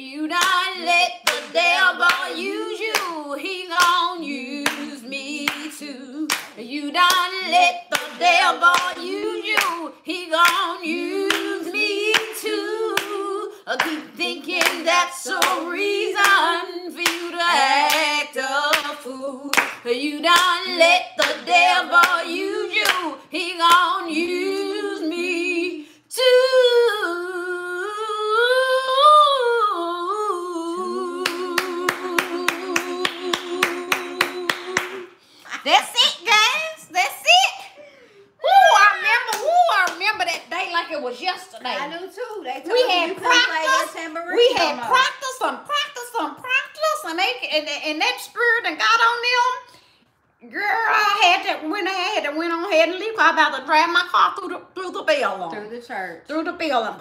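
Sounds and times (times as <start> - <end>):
women singing gospel unaccompanied: 0.0 - 35.7, 37.7 - 46.5
hand clapping on the beat: 0.4 - 3.2, 6.3 - 9.8, 10.4 - 10.7, 13.8 - 15.6, 19.5 - 20.6, 21.2 - 22.2, 22.8 - 23.1, 31.2 - 35.1.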